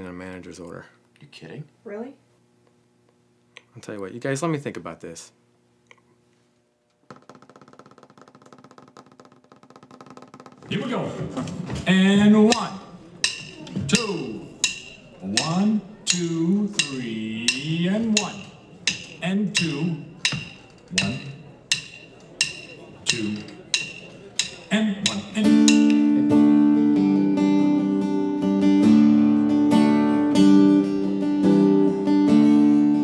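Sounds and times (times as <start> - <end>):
fingers drumming on wood: 7.1 - 10.8, 12.5 - 26.2.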